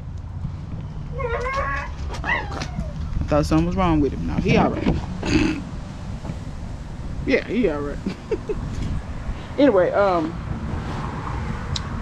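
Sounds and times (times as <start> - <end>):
cat meowing: 1.1 - 3.0.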